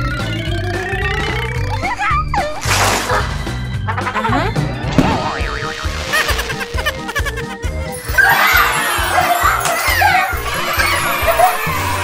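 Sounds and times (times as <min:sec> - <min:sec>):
upbeat music with low beat: 0:03.4 - 0:07.9.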